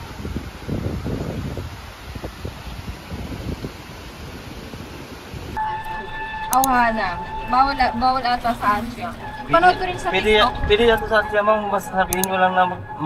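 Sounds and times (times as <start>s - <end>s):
wind buffeting microphone: 0.0s - 13.0s
steady hum: 5.6s - 13.0s.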